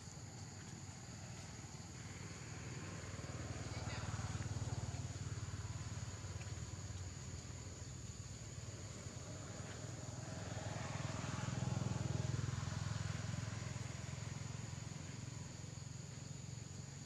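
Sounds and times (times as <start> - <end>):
high insect drone: 0.0 - 17.0
passing vehicle engine hum: 0.0 - 17.0.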